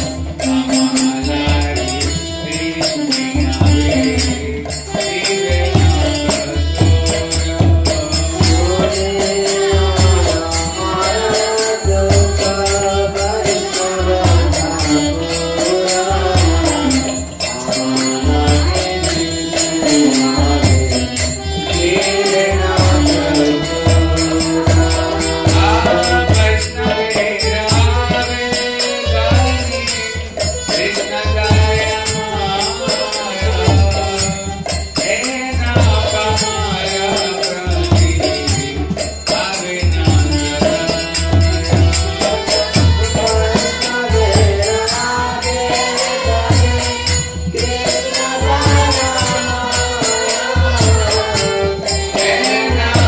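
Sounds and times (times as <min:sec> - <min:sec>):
devotional chanting: 0:00.0 - 0:53.0
jingling hand percussion: 0:00.0 - 0:53.0.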